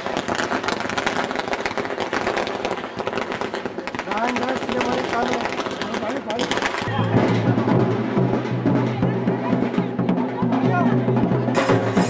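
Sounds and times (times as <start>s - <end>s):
firecrackers crackling and popping: 0.0s - 12.0s.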